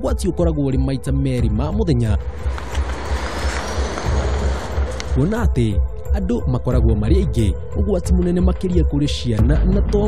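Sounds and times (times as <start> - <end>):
vehicle passing with rushing hiss: 2.3 - 5.2.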